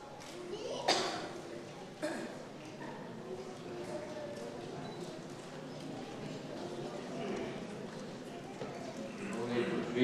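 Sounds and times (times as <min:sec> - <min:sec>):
voices murmuring in a hall: 0:00.0 - 0:10.0.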